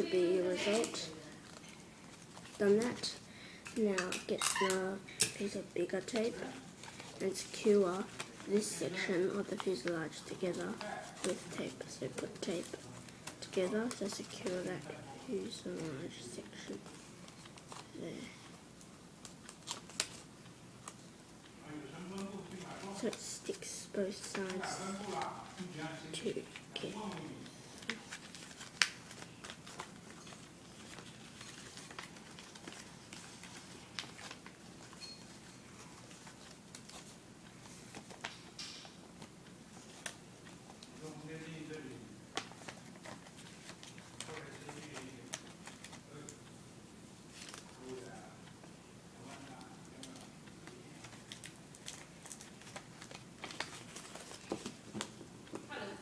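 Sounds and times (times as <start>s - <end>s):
paper rustling and crinkling: 0.0s - 3.2s, 5.3s - 21.1s, 22.0s - 46.4s, 47.3s - 48.6s, 49.2s - 55.7s.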